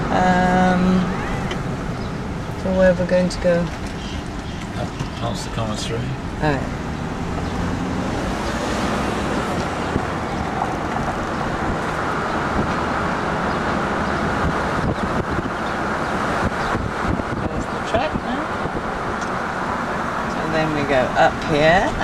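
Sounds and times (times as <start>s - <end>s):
road and wind noise inside car: 0.0s - 22.0s.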